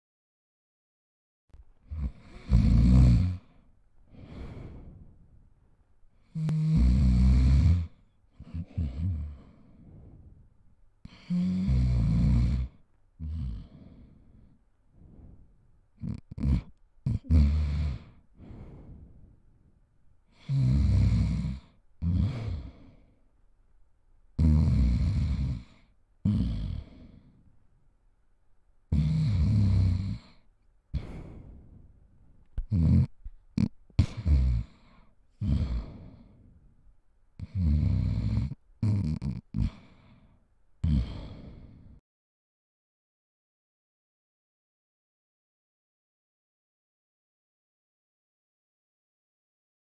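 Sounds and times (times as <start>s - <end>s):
person snoring: 1.8s - 5.3s, 6.2s - 10.4s, 11.0s - 19.4s, 20.3s - 23.2s, 24.4s - 27.4s, 28.9s - 31.9s, 32.6s - 36.6s, 37.4s - 42.0s
short snorts: 1.9s - 5.2s, 6.2s - 10.4s, 11.1s - 19.4s, 20.3s - 23.1s, 24.4s - 27.4s, 28.9s - 32.0s, 32.6s - 36.4s, 37.4s - 42.0s.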